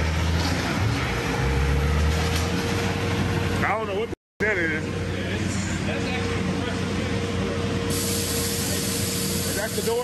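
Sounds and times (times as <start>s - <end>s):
air compressor drone: 0.0s - 10.0s
loud air hiss: 7.9s - 10.0s.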